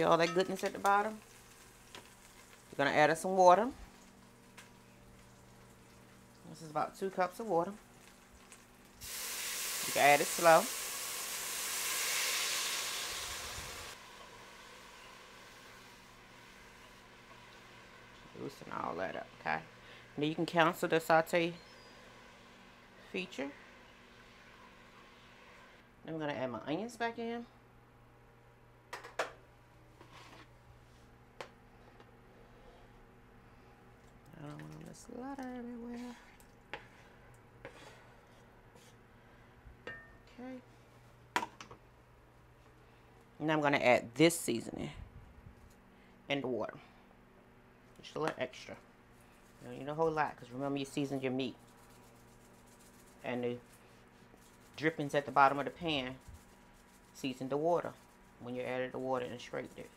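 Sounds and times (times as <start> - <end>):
faint steady hum: 0.0 - 59.9
water sizzling in hot pot: 0.4 - 3.1, 3.9 - 6.4, 7.8 - 18.5
wooden spoon scraping a plate: 30.0 - 30.5, 36.0 - 39.0.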